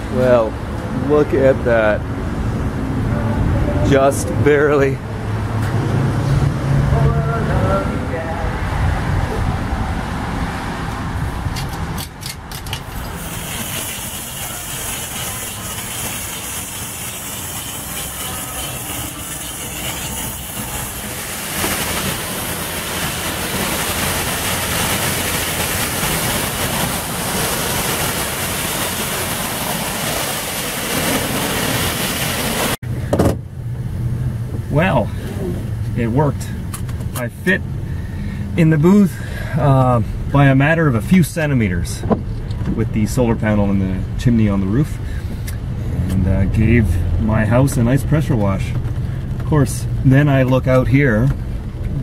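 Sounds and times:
pressure washer spraying water: 0:12.8 - 0:32.8.

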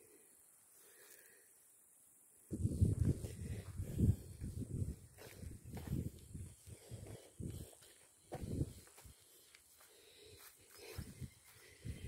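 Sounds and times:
footsteps on grass and dirt: 0:02.5 - 0:12.0.

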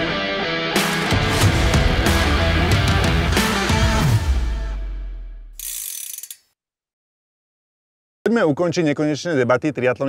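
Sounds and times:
heavy rock music: 0:00.0 - 0:05.3
bright ratcheting click: 0:05.6 - 0:06.5.

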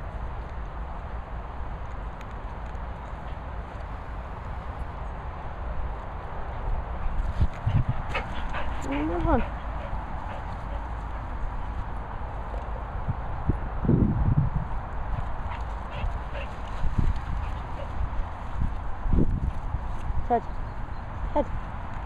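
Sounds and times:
wind on microphone: 0:03.2 - 0:22.0.

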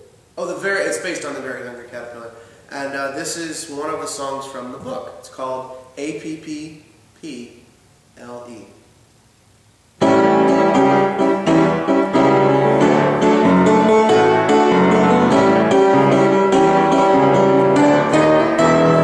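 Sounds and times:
piano playing rhythmic chords: 0:10.0 - 0:19.0.

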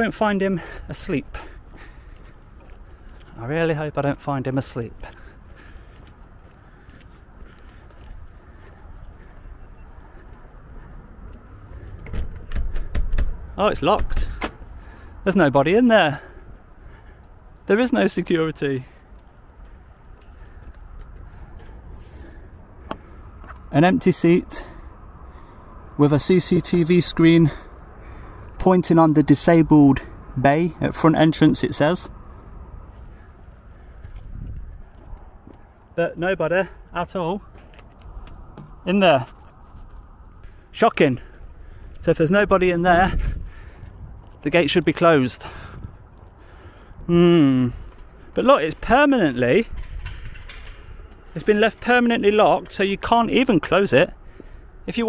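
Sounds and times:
footsteps on concrete: 0:01.3 - 0:03.4, 0:04.8 - 0:09.4, 0:19.0 - 0:23.7, 0:32.4 - 0:36.0
faint short beeps: 0:09.4 - 0:10.0
wind rumble on microphone: 0:31.5 - 0:52.2.

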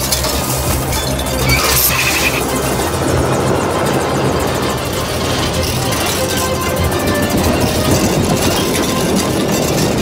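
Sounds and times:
helicopter rotor and engine: 0:00.0 - 0:10.0
film score music: 0:00.1 - 0:09.3.

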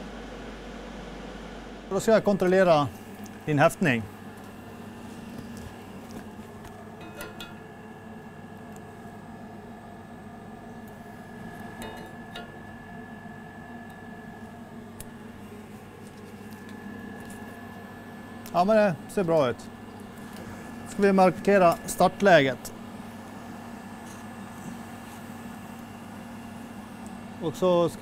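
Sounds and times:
low machinery hum: 0:00.0 - 0:28.0.

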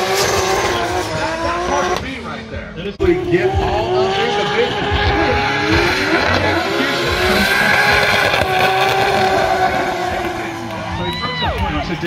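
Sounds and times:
car engine revving high: 0:00.0 - 0:12.0.

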